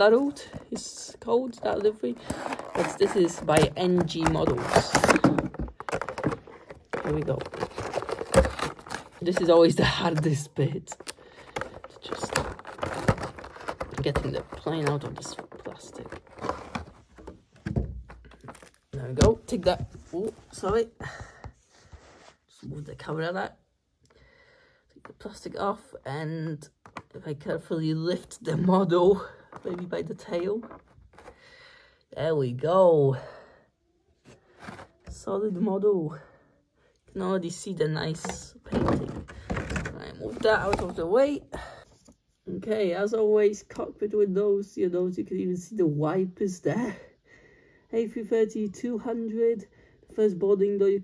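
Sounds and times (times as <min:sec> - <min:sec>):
plastic packaging clicking and crackling: 0:00.0 - 0:19.7.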